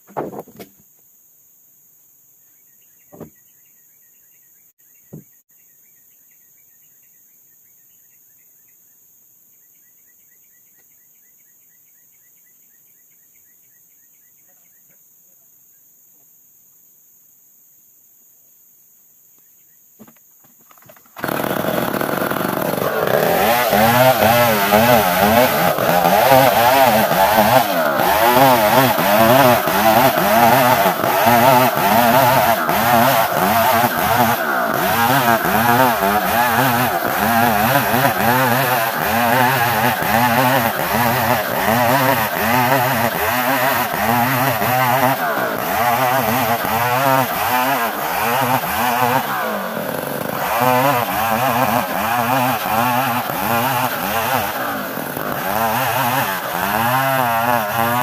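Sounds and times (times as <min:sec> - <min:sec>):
chainsaw cutting wood: 0:20.0 - 0:58.0.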